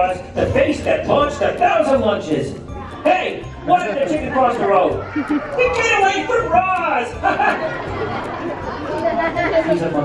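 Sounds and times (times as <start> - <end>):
murmur of voices chattering: 0.0 - 10.0
audience laughing: 5.0 - 5.8, 7.1 - 10.0.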